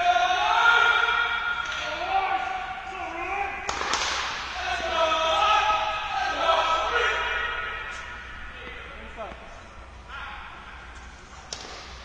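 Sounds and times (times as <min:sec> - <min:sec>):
people talking: 0:01.7 - 0:03.6, 0:04.6 - 0:07.7
racket hitting ball: 0:03.7 - 0:04.6, 0:11.4 - 0:12.0.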